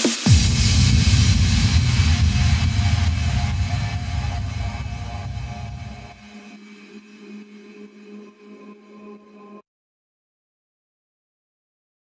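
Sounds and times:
rumbling noise sweep: 0:00.3 - 0:06.4.

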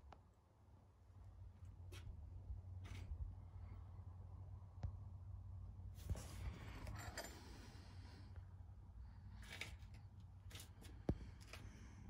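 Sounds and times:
low steady hum: 0:00.0 - 0:12.0
faint rustling and rubbing: 0:06.0 - 0:07.5.

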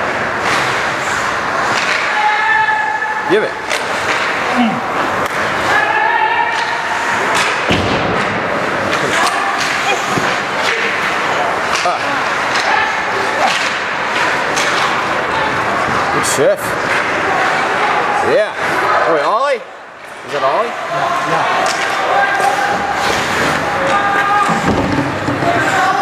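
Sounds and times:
hockey sticks clacking: 0:00.0 - 0:17.8, 0:20.0 - 0:26.0.

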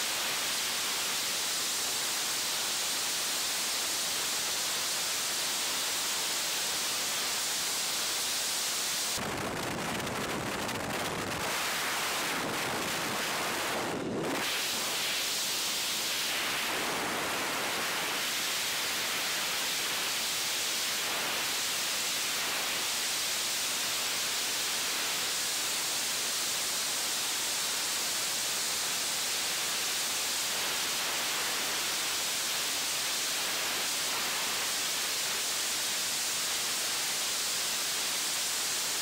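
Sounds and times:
wind rushing over microphone: 0:09.2 - 0:15.1.

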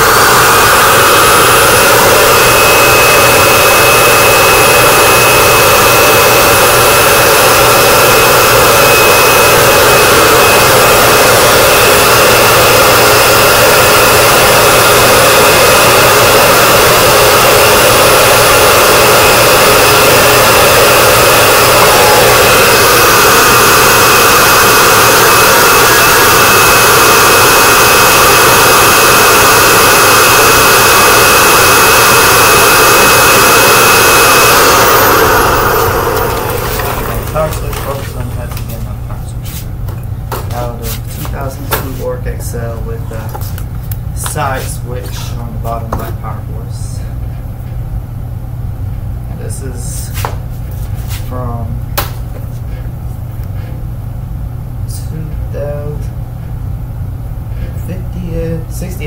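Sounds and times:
vacuum cleaner motor whine: 0:00.0 - 0:39.6
rush of airflow: 0:00.0 - 0:39.8
low machine hum: 0:00.0 - 0:59.0.

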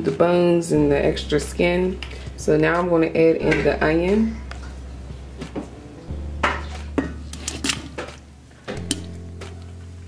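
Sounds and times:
steady low hum: 0:00.7 - 0:10.0.

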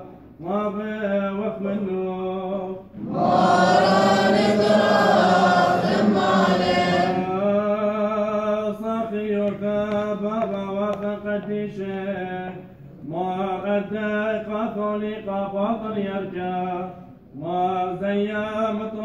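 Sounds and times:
group of men chanting: 0:03.0 - 0:07.4
man chanting: 0:03.8 - 0:19.0.

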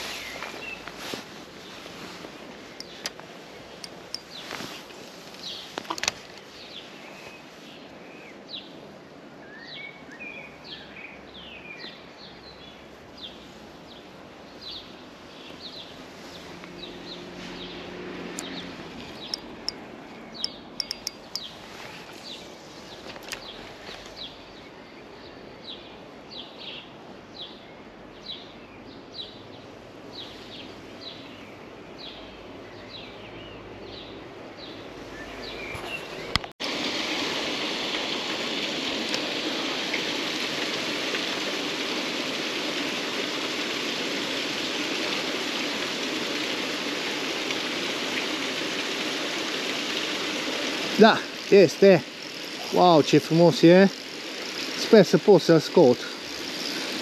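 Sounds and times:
running water rushing: 0:00.0 - 0:08.5, 0:12.8 - 0:24.8, 0:34.7 - 0:57.0.

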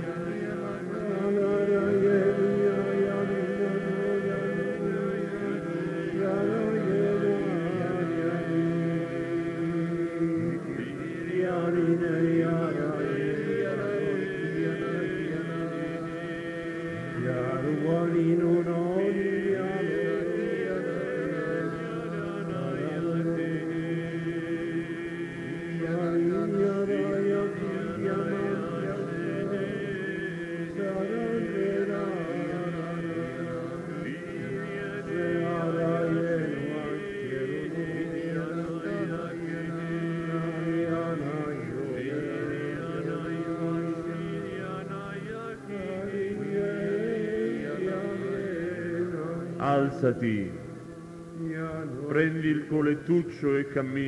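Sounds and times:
congregation chanting: 0:00.0 - 0:54.0.

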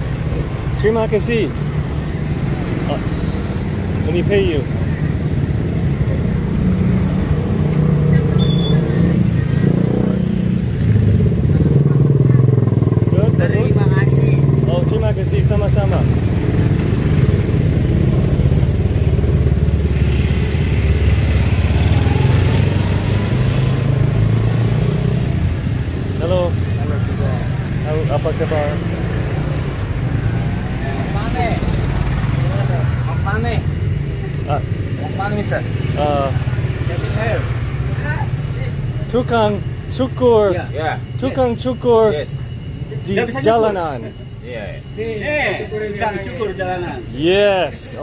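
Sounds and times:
voices: 0:00.0 - 0:48.0
small motorcycle engine running: 0:02.7 - 0:26.3, 0:30.4 - 0:38.2.

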